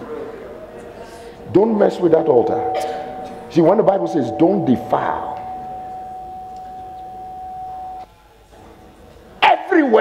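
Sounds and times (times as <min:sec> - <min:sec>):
steady pure high tone: 0:01.9 - 0:08.1.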